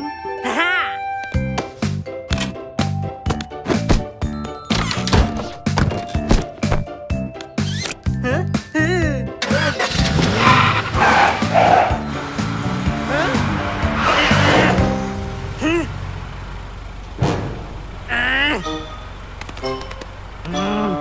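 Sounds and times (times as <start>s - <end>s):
upbeat cartoon music: 0.0s - 15.8s, 18.2s - 21.0s
cartoon car and traffic sounds: 9.3s - 21.0s
wordless cartoon voices: 13.0s - 14.9s, 15.5s - 16.0s, 18.1s - 18.8s, 20.4s - 21.0s.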